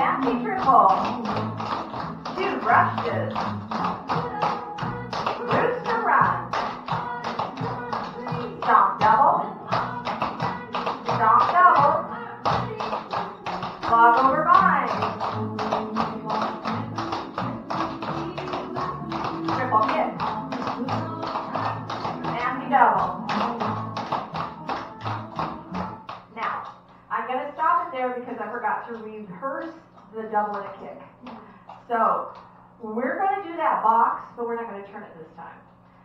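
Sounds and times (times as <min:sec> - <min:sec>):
country song with woman singing: 0:00.0 - 0:26.0.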